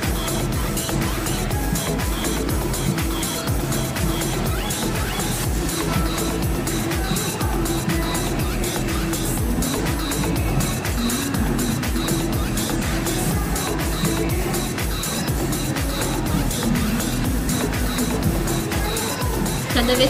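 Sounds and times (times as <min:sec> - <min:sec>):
song with prominent bass line: 0:00.0 - 0:20.0.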